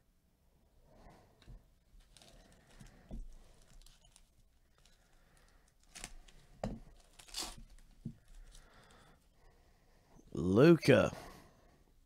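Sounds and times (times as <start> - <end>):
foil wrapper ripping and crinkling: 3.5 - 8.6.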